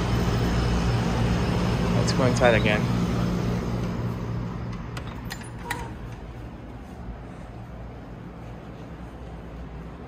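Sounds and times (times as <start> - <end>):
city street traffic hum: 0.0 - 10.0.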